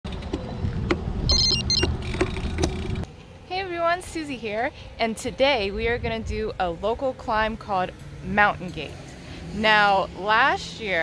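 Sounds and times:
bicycle rolling with clicks: 1.8s - 3.1s.

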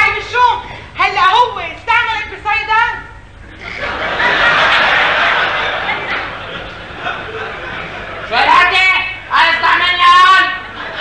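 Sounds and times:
audience laughter: 3.5s - 8.3s, 10.6s - 11.0s.

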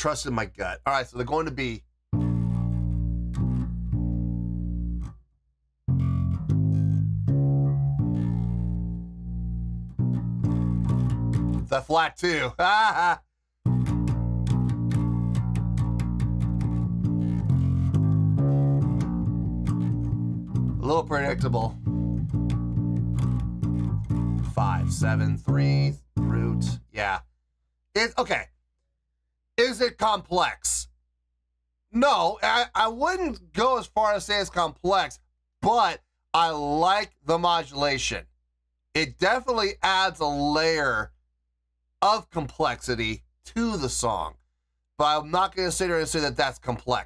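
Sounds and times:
electric bass low notes: 2.2s - 5.1s, 5.9s - 11.8s, 13.7s - 27.2s.

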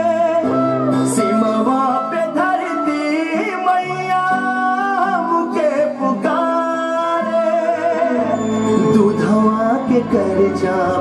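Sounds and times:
song with held sung notes: 0.0s - 11.0s.

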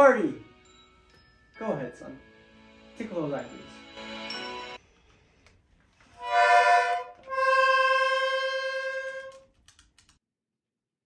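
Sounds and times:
toy accordion chords: 1.6s - 4.8s, 6.2s - 9.4s.

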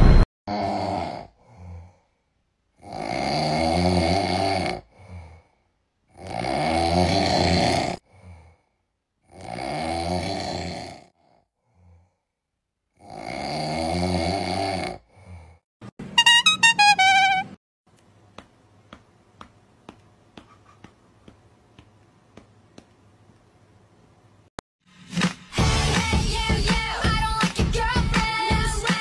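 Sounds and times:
person snoring: 0.5s - 2.1s, 2.8s - 8.6s, 9.2s - 12.3s, 12.9s - 15.7s.

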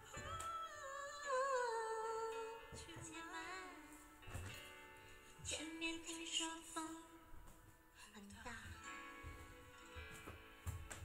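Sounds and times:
woman singing long wordless note: 0.0s - 4.0s.

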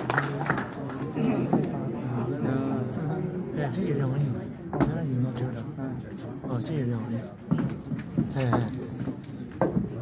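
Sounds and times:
murmured voices: 0.1s - 10.0s.

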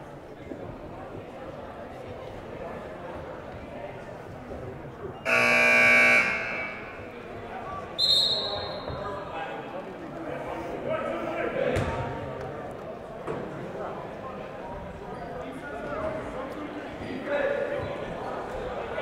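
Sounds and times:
murmur of crowd: 0.0s - 19.0s
referee's whistle blast: 5.3s - 7.1s, 8.0s - 8.9s
scoreboard buzzer: 5.3s - 7.1s.

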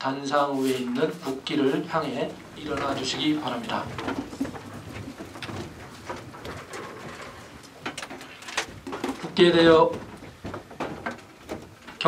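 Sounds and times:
chairs creaking and scraping: 0.3s - 12.0s
clothes rustling: 0.3s - 12.0s
feet shuffling: 0.3s - 12.0s
knocks: 0.8s - 12.0s.

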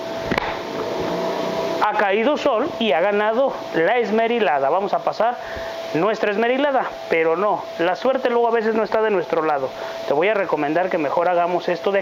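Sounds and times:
faint constant tone: 0.0s - 12.0s
workshop hum: 0.0s - 12.0s.

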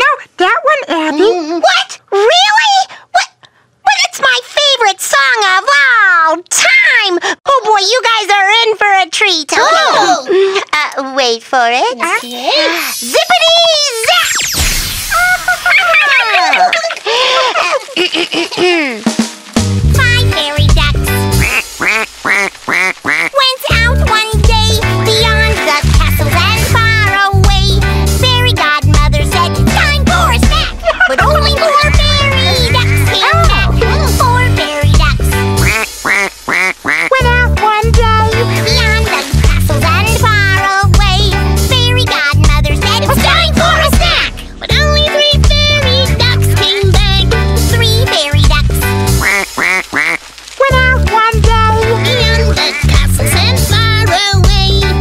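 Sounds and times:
upbeat children's music: 18.1s - 55.0s
cartoon duck quacks: 21.4s - 23.4s, 31.2s - 33.8s, 35.6s - 37.4s, 49.2s - 50.2s, 52.2s - 53.1s.

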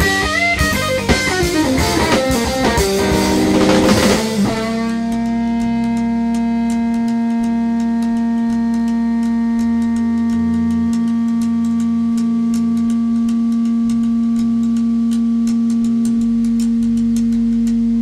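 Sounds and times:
bass notes: 0.0s - 18.0s
electric guitar long note: 0.0s - 18.0s
faint steady ticking: 0.4s - 18.0s.

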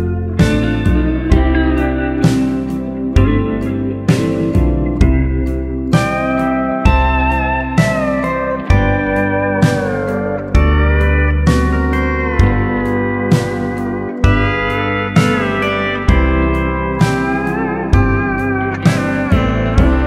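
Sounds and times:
bass guitar: 0.0s - 20.0s
drums: 0.0s - 20.0s
steel guitar solo: 0.0s - 20.0s.

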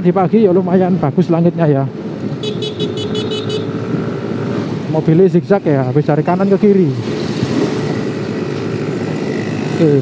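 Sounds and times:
road noise: 0.0s - 10.0s
motorcycle engine: 6.3s - 10.0s.

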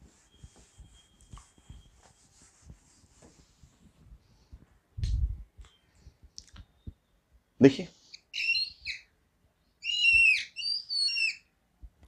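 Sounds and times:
whiteboard marker squeaking: 9.8s - 11.4s.

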